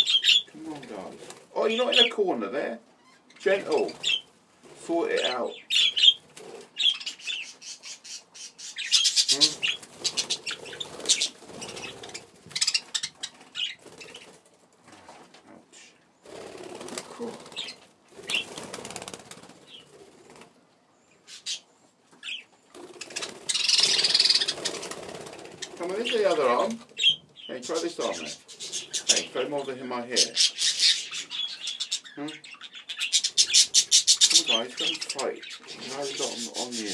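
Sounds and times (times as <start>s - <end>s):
budgerigars fluttering wings: 9.4s - 14.5s, 16.3s - 20.5s, 22.7s - 27.2s.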